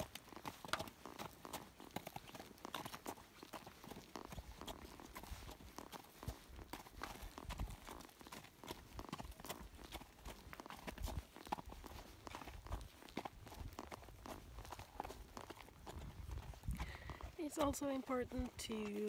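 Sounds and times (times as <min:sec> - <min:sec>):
horse hooves clip-clopping: 0:00.0 - 0:19.0.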